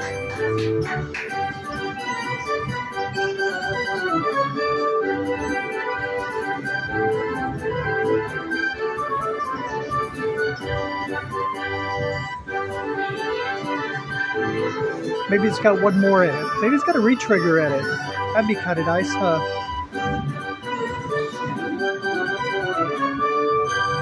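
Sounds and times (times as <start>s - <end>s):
organ-like slot machine win music: 0.0s - 24.0s.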